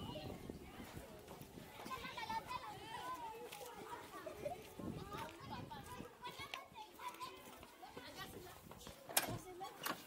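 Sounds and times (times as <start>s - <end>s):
distant children chattering: 0.0s - 10.0s.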